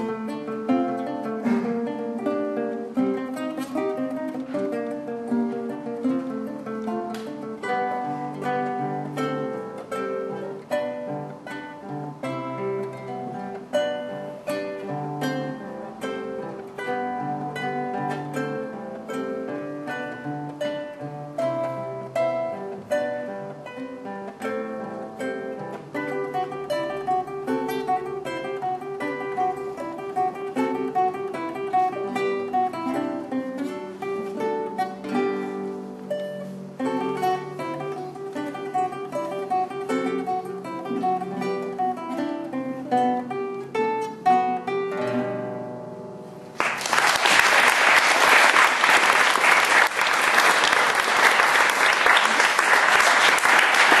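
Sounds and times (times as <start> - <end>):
acoustic guitar duet: 0.0 - 54.0
applause: 46.5 - 54.0.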